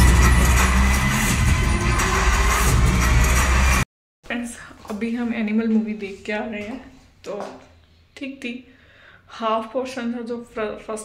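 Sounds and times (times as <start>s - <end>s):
film soundtrack with heavy bass: 0.0s - 3.8s.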